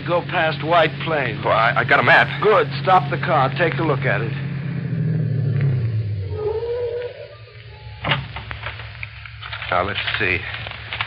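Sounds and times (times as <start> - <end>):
wavering whine: 0.0 - 9.5
car engine running down: 0.0 - 11.0
paper crackling and rustling: 8.4 - 11.0.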